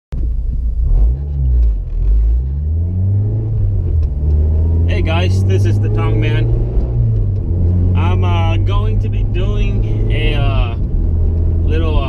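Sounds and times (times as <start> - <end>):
car engine from inside cabin: 0.2 - 12.0.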